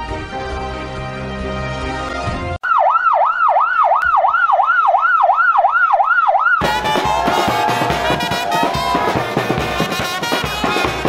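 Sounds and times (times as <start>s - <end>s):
siren wailing: 2.6s - 9.2s
bass drum striking: 6.6s - 11.0s
brass band playing: 6.6s - 11.0s
theme music tag: 6.6s - 11.0s.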